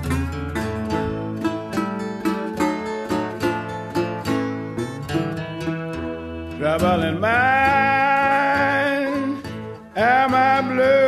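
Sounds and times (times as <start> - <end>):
acoustic guitar accompaniment: 0.0 - 11.0
sliding lead melody: 0.0 - 11.0.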